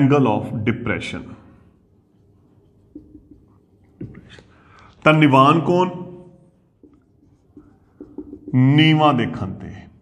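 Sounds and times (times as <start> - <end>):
marker writing on whiteboard: 2.2 - 4.5, 6.6 - 9.4
man speaking: 5.0 - 6.4, 8.5 - 10.0.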